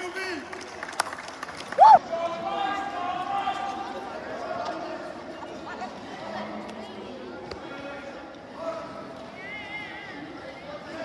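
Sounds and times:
person shouting: 0:01.8 - 0:02.0.

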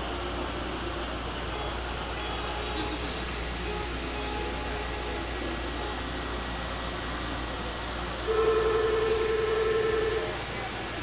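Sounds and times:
monorail running: 0:00.0 - 0:11.0
steady horn tone: 0:01.4 - 0:06.5.

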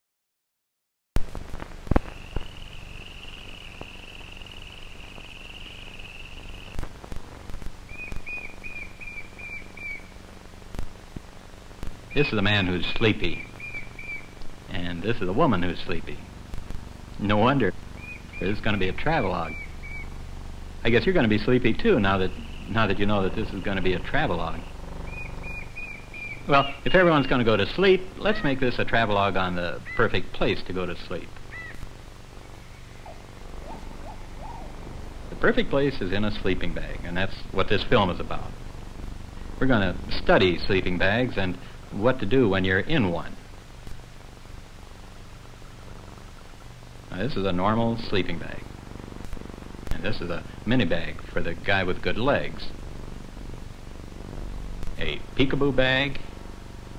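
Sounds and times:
film soundtrack hum and crackle: 0:01.2 - 0:56.9
high warbling whistle tone: 0:32.5 - 0:34.8.

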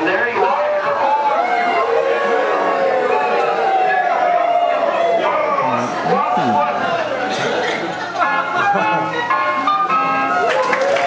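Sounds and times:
audience applauding: 0:10.1 - 0:11.0.

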